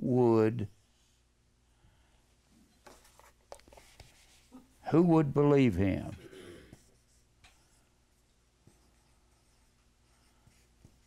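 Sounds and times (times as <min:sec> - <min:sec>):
man talking: 0:00.0 - 0:00.7, 0:04.8 - 0:06.3.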